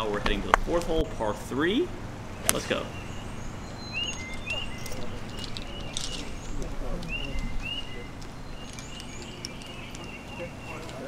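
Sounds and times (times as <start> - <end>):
songbird chirping: 0.0 - 11.0.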